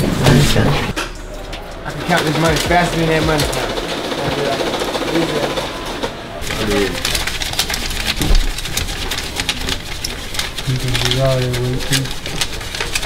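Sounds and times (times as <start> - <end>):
voices chatting: 0.0 - 12.5
banknote counter riffling bills: 1.7 - 13.0.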